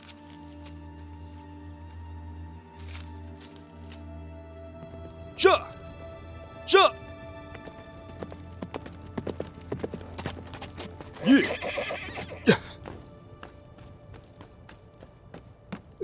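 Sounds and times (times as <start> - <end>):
film music: 0.0 - 16.0
horse hooves clip-clopping: 5.8 - 16.0
horse whinnying: 11.2 - 12.8.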